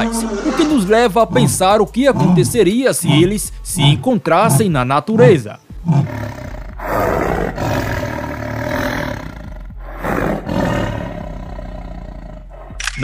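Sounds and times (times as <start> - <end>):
tiger snarling and roaring: 0.0 - 13.0.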